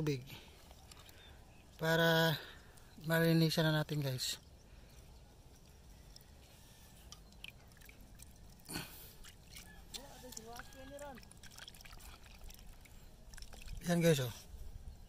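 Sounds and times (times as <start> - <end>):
water trickling and splashing: 0.0 - 14.9.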